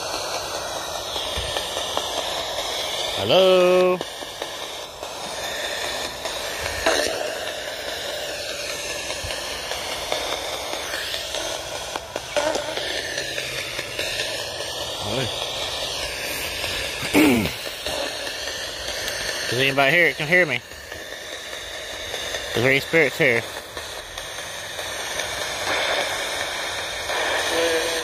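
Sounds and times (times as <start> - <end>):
radio static hiss: 0.0 - 28.0
garbled voice-like snippets: 16.3 - 18.1.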